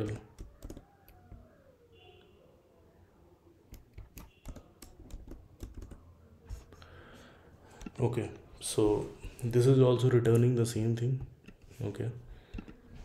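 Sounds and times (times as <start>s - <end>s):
keyboard key clicks: 3.7s - 6.0s.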